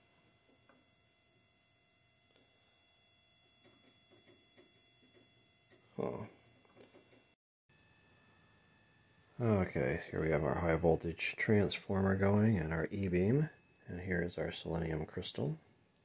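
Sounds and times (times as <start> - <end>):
transformer electrical whine: 0.0 - 16.0
short vocal sound: 6.0 - 6.3.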